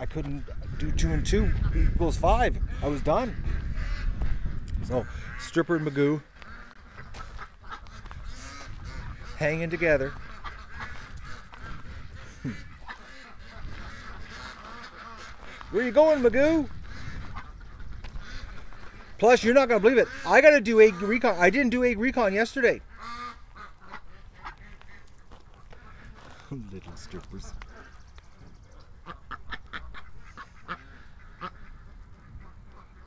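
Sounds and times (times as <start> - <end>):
ducks quacking softly: 0.0 - 33.0.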